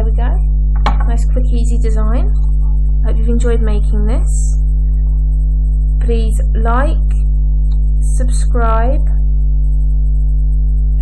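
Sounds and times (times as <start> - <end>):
faint broken high whine: 0.0 - 11.0
loud steady low hum: 0.0 - 11.0.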